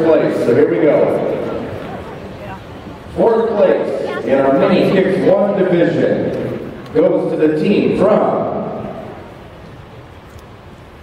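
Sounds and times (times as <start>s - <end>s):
crowd murmur: 0.0s - 11.0s
announcer voice echoing: 1.9s - 6.3s.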